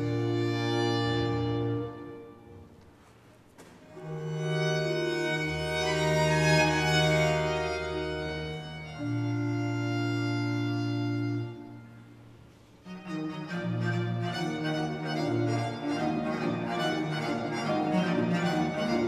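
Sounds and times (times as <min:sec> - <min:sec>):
violin and viols playing chords: 0:00.0 - 0:02.7, 0:03.9 - 0:19.0.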